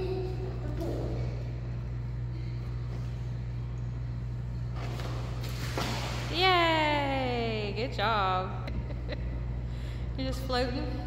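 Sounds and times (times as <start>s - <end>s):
low machinery hum: 0.0s - 11.0s
soft water splash: 4.8s - 6.6s.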